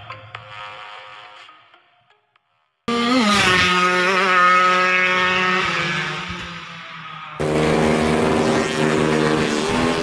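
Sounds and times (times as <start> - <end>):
motorcycle engine at high revs: 2.9 - 10.0.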